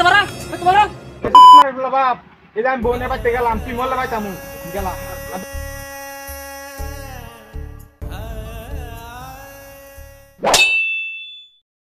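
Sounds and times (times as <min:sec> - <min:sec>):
faint background music: 0:00.0 - 0:07.3
metallic ding: 0:10.5 - 0:11.6.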